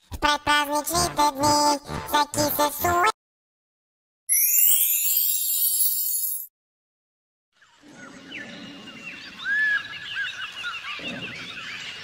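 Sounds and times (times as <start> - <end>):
birds chirping: 7.6 - 12.0.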